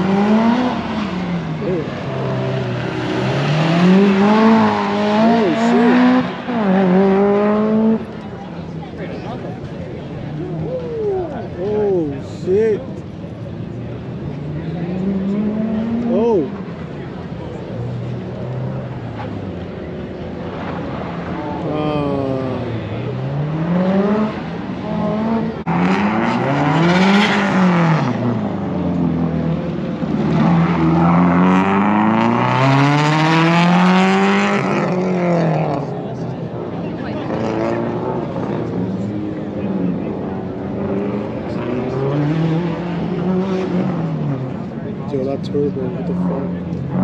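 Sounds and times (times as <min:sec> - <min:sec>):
car engine revving: 0:00.0 - 0:08.4, 0:13.9 - 0:47.0.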